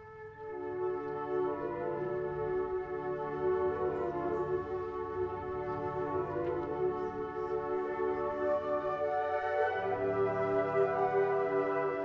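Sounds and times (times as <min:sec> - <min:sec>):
flute choir playing chords: 0:00.0 - 0:12.0.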